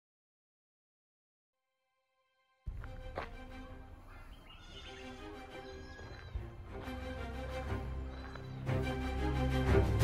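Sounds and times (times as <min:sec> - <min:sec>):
quiet background music: 0:01.9 - 0:10.0.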